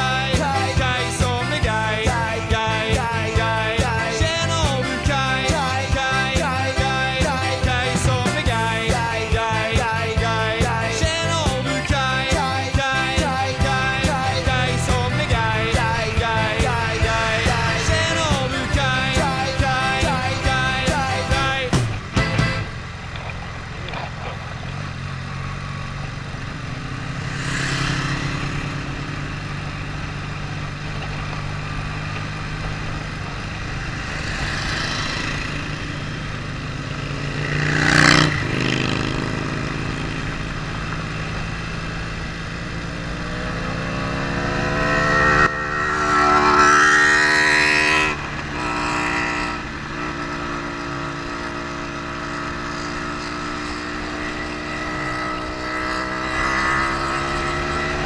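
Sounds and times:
loud rush of noise: 0.0s - 48.6s
motorcycle engine running: 0.0s - 58.0s.

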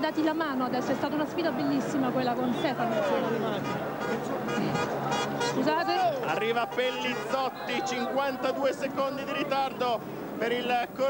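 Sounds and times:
voices talking over each other: 0.0s - 11.0s.

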